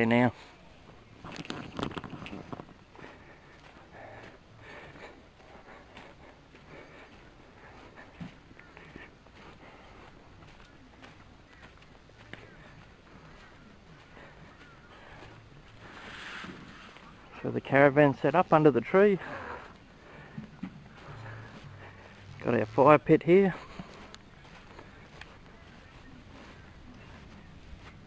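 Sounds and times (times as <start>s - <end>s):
footsteps on grass: 0.0s - 28.0s
faint bird calls: 0.3s - 17.4s, 23.5s - 28.0s
camera handling rustle: 1.2s - 2.8s.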